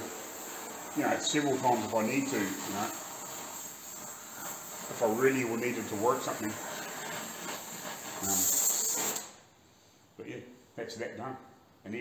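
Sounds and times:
torch flame hissing: 0:00.0 - 0:09.5.

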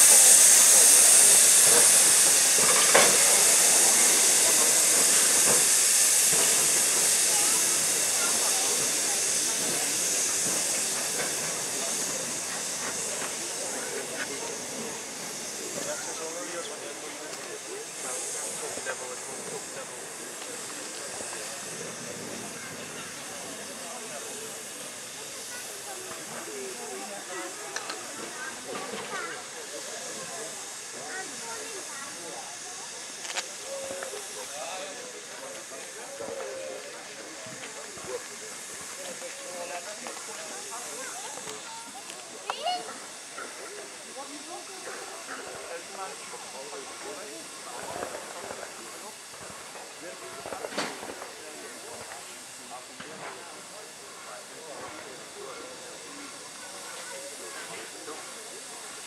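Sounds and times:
murmured voices: 0:00.0 - 0:59.0
steam locomotive hissing steam: 0:00.0 - 0:59.0.

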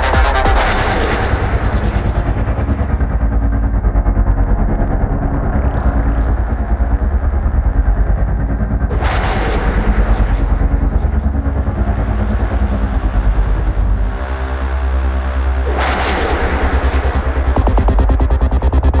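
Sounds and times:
kick drum beat: 0:00.0 - 0:00.7
heavy bass line: 0:00.0 - 0:19.0
rising sweep: 0:00.0 - 0:19.0
trance music: 0:00.0 - 0:19.0.

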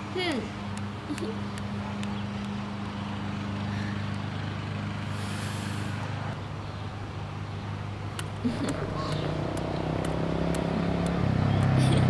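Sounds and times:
motorbike engine humming: 0:00.0 - 0:12.0
light footsteps clicking: 0:08.2 - 0:12.0.

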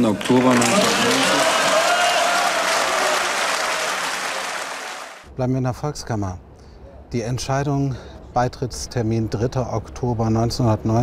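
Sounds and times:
applause from a chamber: 0:00.0 - 0:05.3.

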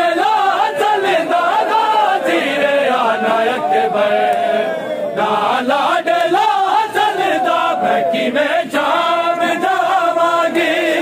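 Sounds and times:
lead voice chanting: 0:00.0 - 0:11.0
men chanting in unison: 0:00.0 - 0:11.0.

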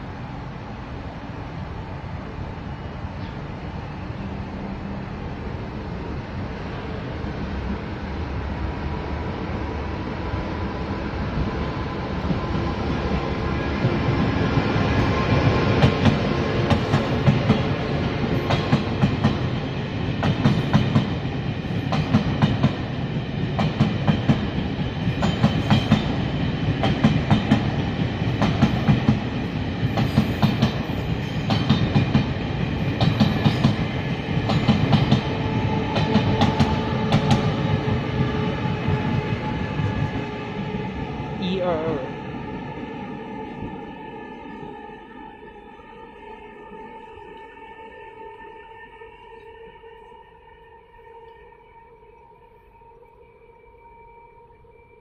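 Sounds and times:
train rumbling past: 0:00.0 - 0:48.9.

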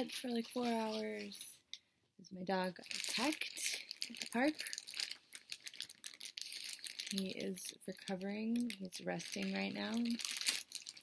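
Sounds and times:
plastic bag crinkling: 0:00.0 - 0:01.5, 0:02.5 - 0:11.0.

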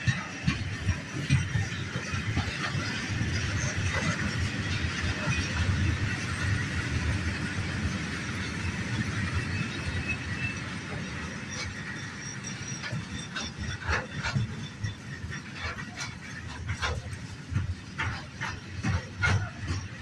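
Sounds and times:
train wagons rumbling: 0:00.0 - 0:20.0
wheels and couplings clanking: 0:00.0 - 0:20.0
high wheel squeal: 0:00.1 - 0:20.0.

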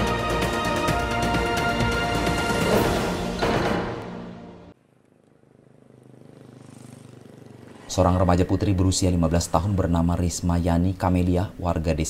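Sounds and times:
motorcycle engine approaching: 0:01.7 - 0:10.6.

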